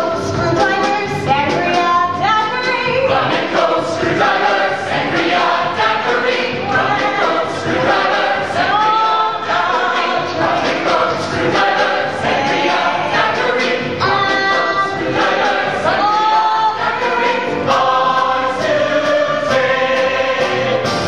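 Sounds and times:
mixed chorus singing: 0:02.5 - 0:21.0.

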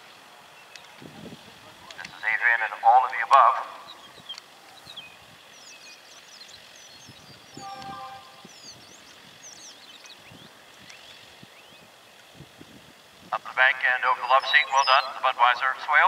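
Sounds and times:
birds chirping and singing: 0:03.4 - 0:12.3, 0:13.6 - 0:15.7.

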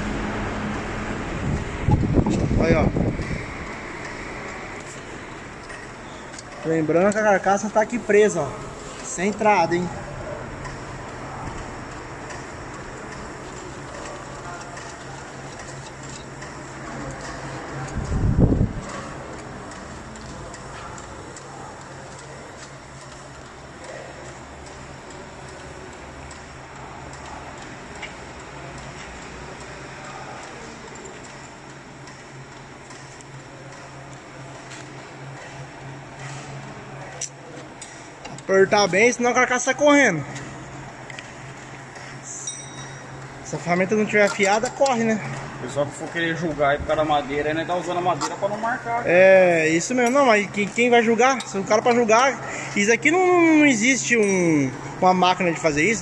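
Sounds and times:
workshop machinery hum: 0:00.0 - 0:56.0.

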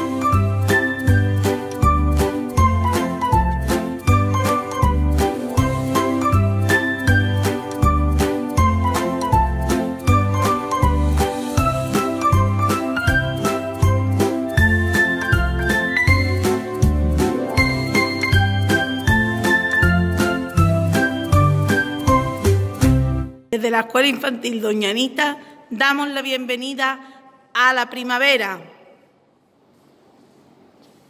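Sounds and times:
upbeat background music: 0:00.0 - 0:23.5.

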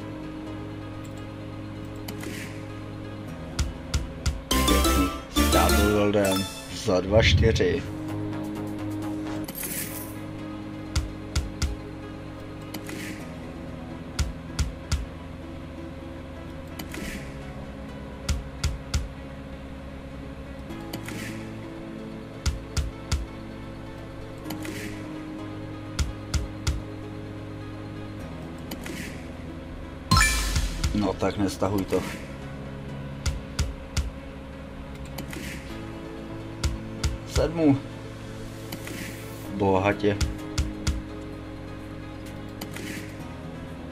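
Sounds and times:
looping synth tune: 0:04.5 - 0:07.5, 0:30.1 - 0:31.0
slot reel spin swish: 0:30.1 - 0:31.0.

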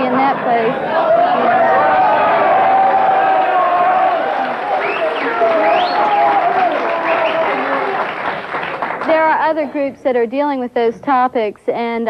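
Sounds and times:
voices: 0:00.0 - 0:08.2
audience applauding: 0:01.0 - 0:09.3.

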